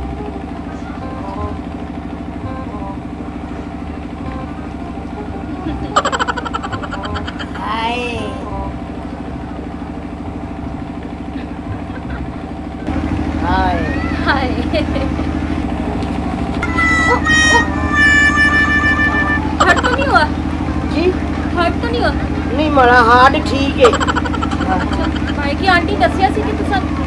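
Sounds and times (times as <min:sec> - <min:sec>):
low mechanical hum: 0:00.0 - 0:27.0
man and woman laughing: 0:05.3 - 0:07.8, 0:10.9 - 0:12.9, 0:14.2 - 0:15.4, 0:16.6 - 0:20.4, 0:23.6 - 0:25.8
horn-like tone: 0:16.6 - 0:20.9.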